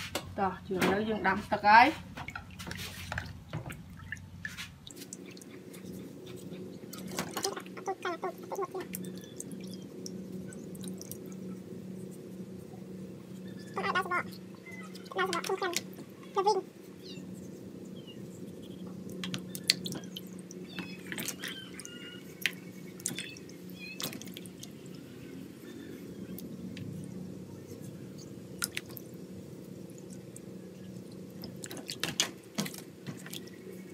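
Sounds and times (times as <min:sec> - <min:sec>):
steady low hum: 0:00.0 - 0:33.9.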